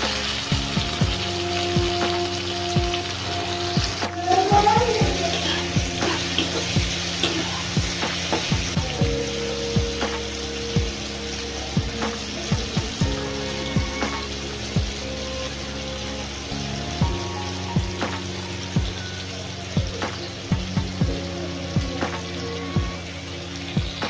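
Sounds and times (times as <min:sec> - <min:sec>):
background music with steady beat: 0:00.0 - 0:24.0
vegetables sizzling in oil: 0:00.0 - 0:24.0.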